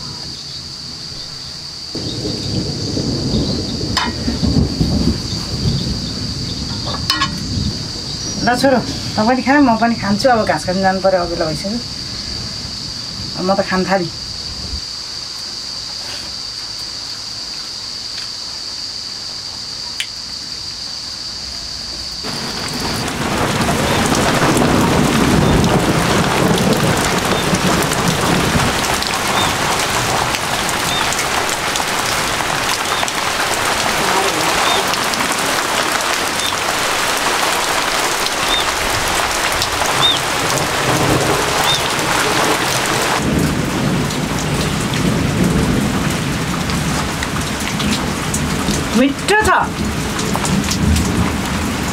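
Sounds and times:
low thunder rumbles: 0.0s - 15.0s, 22.2s - 51.9s
heavy rain falling: 0.0s - 51.9s.

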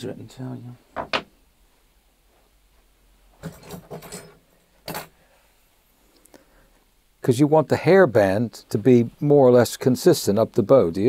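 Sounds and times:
tools rattling on a workbench: 3.4s - 5.2s.

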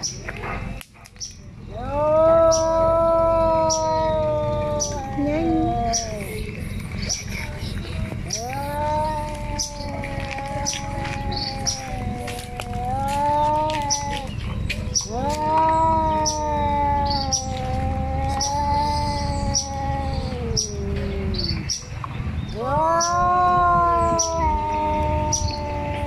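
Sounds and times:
cats yowling: 1.6s - 26.0s.

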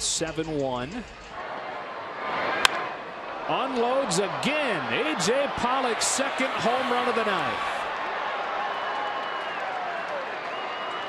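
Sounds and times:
ballpark crowd noise: 1.0s - 11.0s
bat cracking on baseball: 2.6s - 3.0s.

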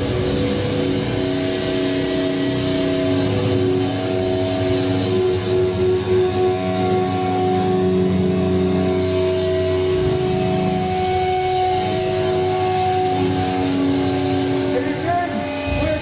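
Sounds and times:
bass guitar droning chord: 0.0s - 16.0s
distorted electric guitars droning: 0.0s - 16.0s.

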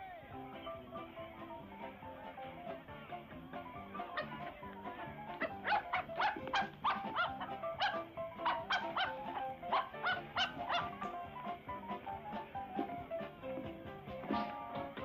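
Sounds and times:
dog barking: 4.0s - 4.6s, 5.3s - 11.2s.

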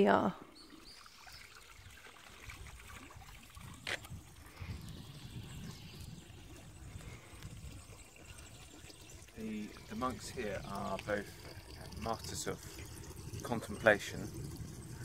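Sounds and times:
water trickling into basin: 0.0s - 15.0s.

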